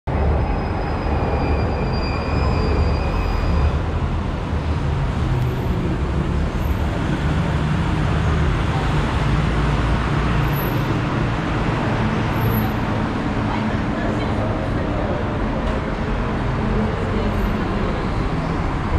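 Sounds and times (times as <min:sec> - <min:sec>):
rumble of passing vehicles: 0:00.1 - 0:18.9.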